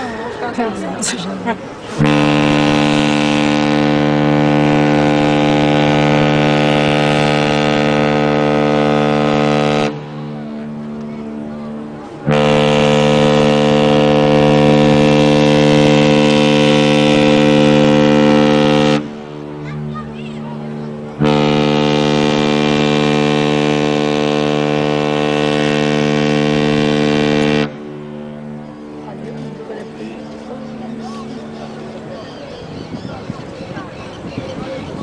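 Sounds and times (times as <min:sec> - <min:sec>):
ship's horn deep blasts: 0:01.8 - 0:32.8.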